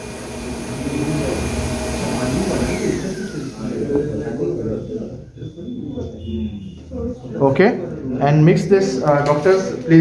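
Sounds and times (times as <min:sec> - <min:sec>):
machine whirring: 0:00.0 - 0:05.1
indistinct background voices: 0:00.7 - 0:10.0.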